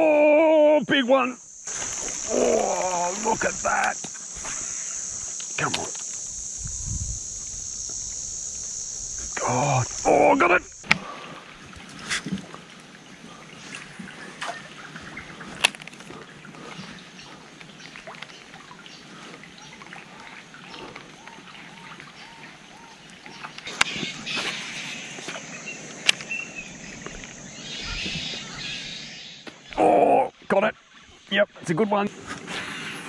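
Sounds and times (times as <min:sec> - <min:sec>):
water splashing: 0:01.7 - 0:05.0, 0:07.3 - 0:28.8.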